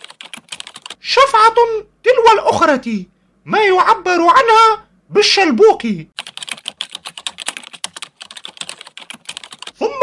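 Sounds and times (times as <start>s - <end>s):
typing on computer keyboard: 0.0s - 1.0s, 6.2s - 9.8s.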